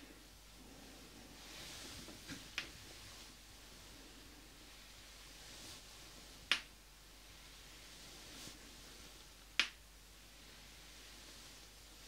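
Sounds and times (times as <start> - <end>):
finger snaps: 6.5 - 6.7, 9.6 - 9.8.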